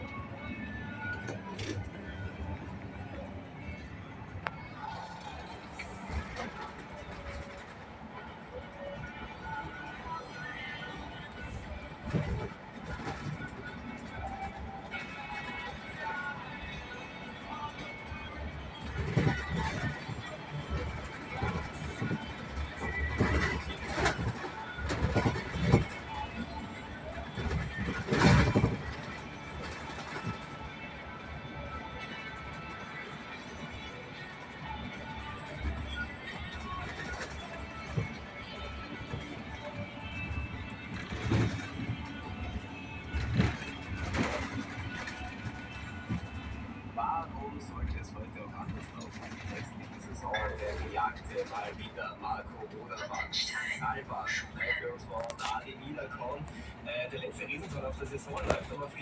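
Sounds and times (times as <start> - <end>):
bus engine and road noise: 0.0 - 59.0
radio music: 0.0 - 59.0.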